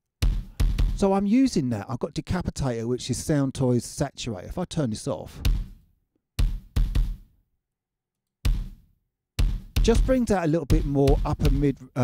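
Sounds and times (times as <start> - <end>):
kick drum hits: 0.2 - 1.0, 5.4 - 5.8, 6.4 - 7.2, 8.4 - 8.8, 9.4 - 11.7.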